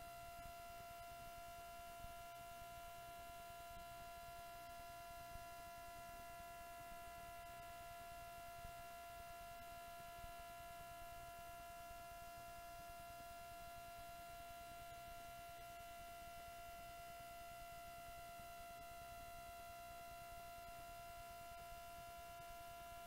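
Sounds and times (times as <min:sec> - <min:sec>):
faint electrical whine: 0:00.0 - 0:23.0.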